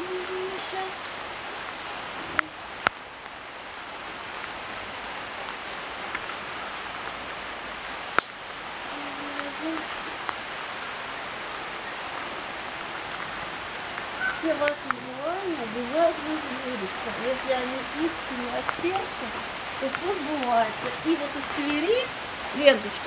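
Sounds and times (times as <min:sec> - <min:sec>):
light rain falling: 0:00.0 - 0:23.0.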